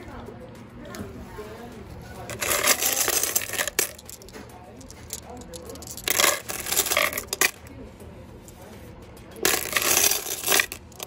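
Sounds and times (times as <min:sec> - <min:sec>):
stones clinking and rattling: 0:02.2 - 0:07.7, 0:09.4 - 0:11.0.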